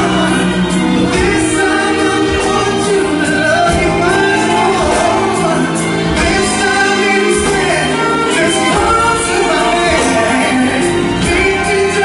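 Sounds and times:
live band music: 0.0s - 12.0s
man singing: 0.0s - 12.0s.

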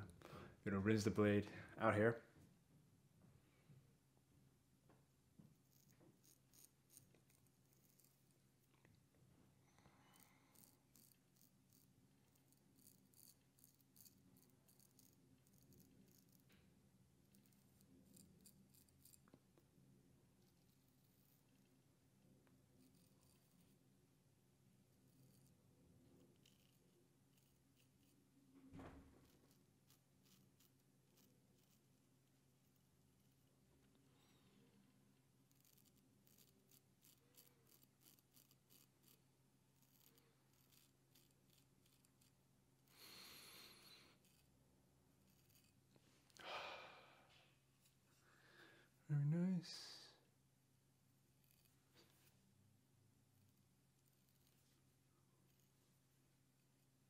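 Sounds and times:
low room hum: 0.0s - 57.0s
razor scraping stubble: 5.4s - 8.9s, 10.0s - 19.4s, 22.7s - 23.9s, 24.8s - 33.2s, 35.4s - 46.4s, 51.2s - 52.4s, 53.3s - 56.1s.

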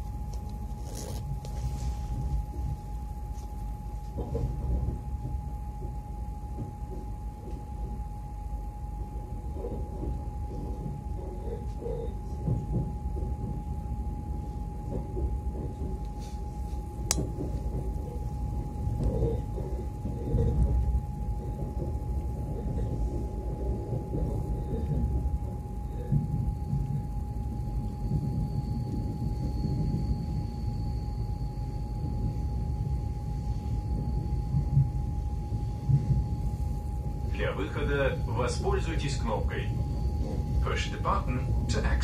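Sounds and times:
faint high whine: 0.0s - 42.0s
train rumbling on track: 1.0s - 42.0s.

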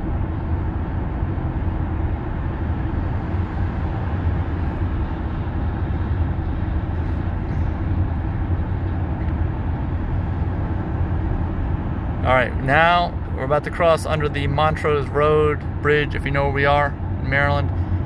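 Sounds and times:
road and tyre noise in car cabin: 0.0s - 18.0s.

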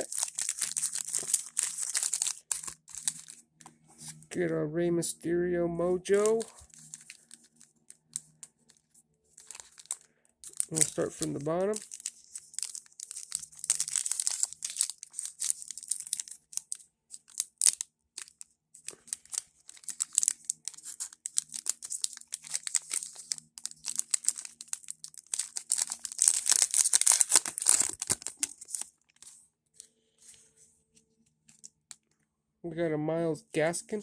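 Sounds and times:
foil wrapper tearing and crinkling: 0.0s - 3.4s, 6.1s - 8.8s, 9.4s - 29.2s.

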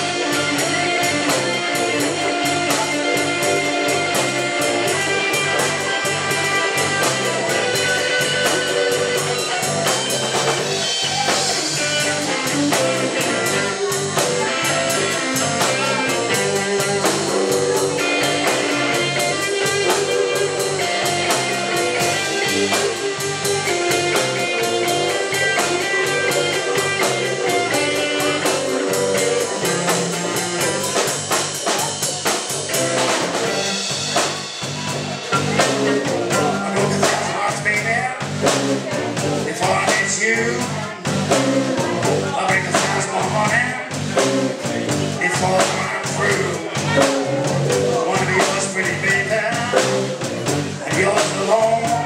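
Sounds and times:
drum kit: 0.0s - 52.0s
electric bass: 0.0s - 52.0s
electric guitar: 0.0s - 52.0s.

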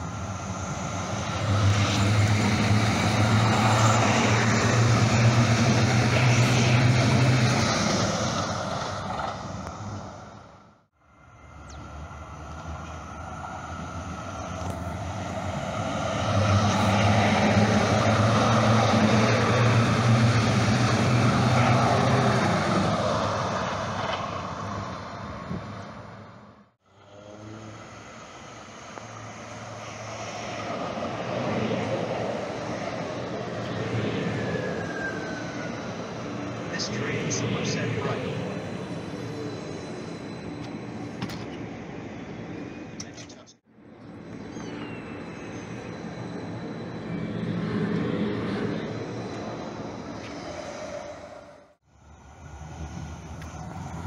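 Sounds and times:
train passing with low hum: 0.0s - 54.0s
wheels rushing on rails: 0.0s - 54.0s.

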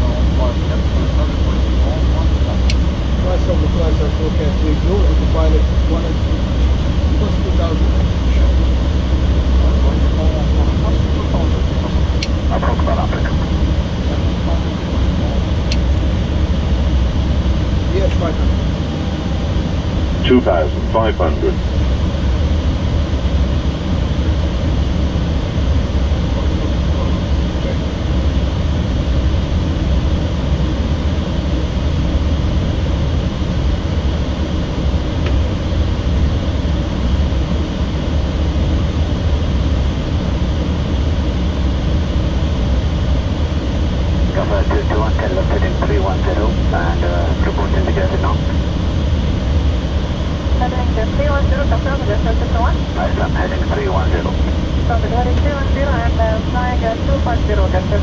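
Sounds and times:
airliner cockpit engine rumble: 0.0s - 58.0s
faint muffled voices: 9.6s - 15.6s, 20.2s - 21.6s, 44.2s - 48.6s.

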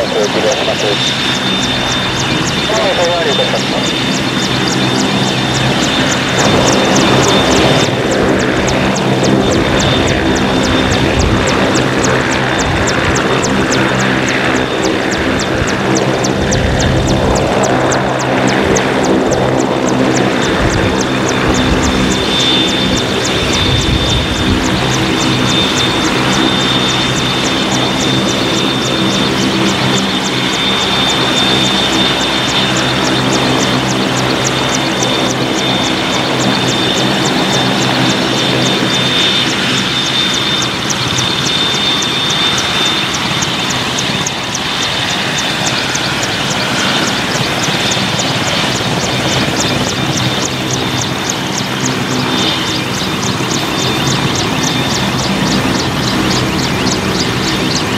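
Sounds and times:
helicopter turbine whine: 0.0s - 57.9s
rotor blades ticking: 0.0s - 57.9s.

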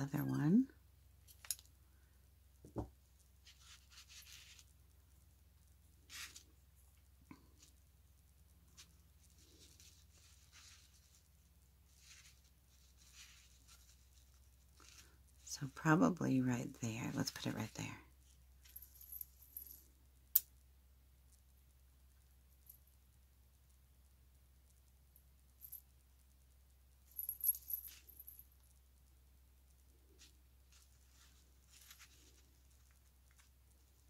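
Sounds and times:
tiny jingle bells jingling: 27.0s - 28.8s.

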